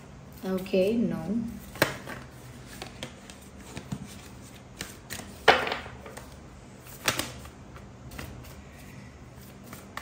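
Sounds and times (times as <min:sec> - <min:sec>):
cards being shuffled: 0:01.6 - 0:10.0.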